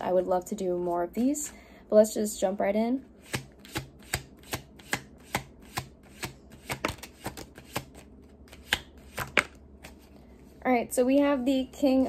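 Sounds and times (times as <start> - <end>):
cards being shuffled by hand: 3.2 - 10.2.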